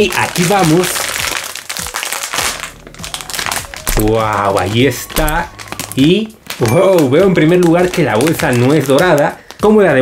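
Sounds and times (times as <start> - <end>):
plastic wrapper crinkling: 0.0 - 10.0.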